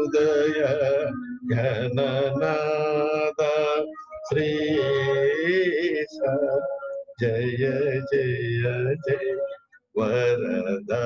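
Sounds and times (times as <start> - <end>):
man singing long held notes: 0.0 - 11.0.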